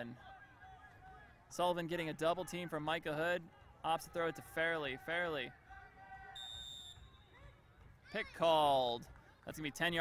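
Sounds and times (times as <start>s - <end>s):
referee whistle blast: 6.3s - 7.4s.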